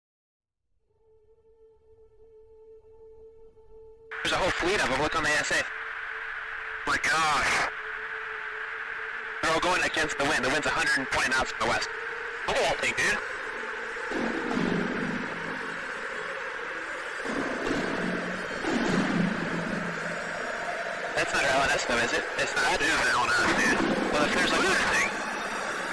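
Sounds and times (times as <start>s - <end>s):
faint steady electronic tone: 1.0s - 25.9s
cockpit intercom hiss: 4.1s - 25.9s
muffled low voices: 6.8s - 7.8s, 9.4s - 25.9s.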